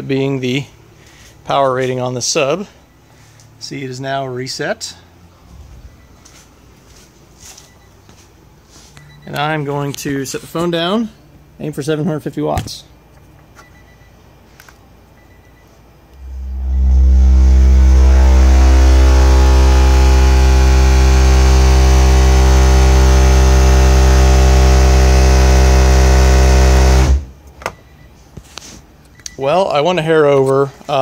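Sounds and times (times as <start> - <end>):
subwoofer deep bass tone: 16.1 - 27.4.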